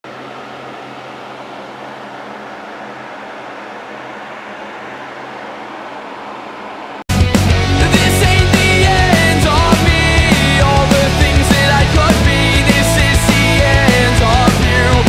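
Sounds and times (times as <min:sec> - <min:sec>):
loud rock music: 0:07.1 - 0:15.0.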